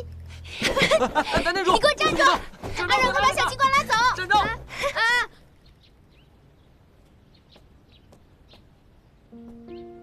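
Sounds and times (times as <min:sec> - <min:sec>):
faint bird chirps: 0:05.5 - 0:10.0.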